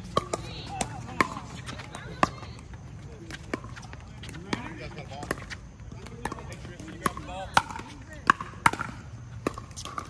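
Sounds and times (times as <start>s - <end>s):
paddles hitting plastic ball: 3.2s - 10.0s.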